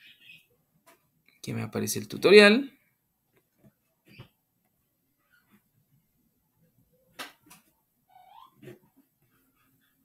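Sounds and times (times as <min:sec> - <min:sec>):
faint animal whine: 0:08.0 - 0:09.0.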